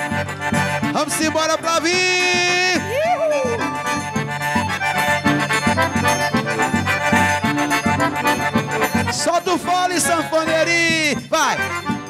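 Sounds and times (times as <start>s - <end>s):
accordion playing chords: 0.0s - 12.0s.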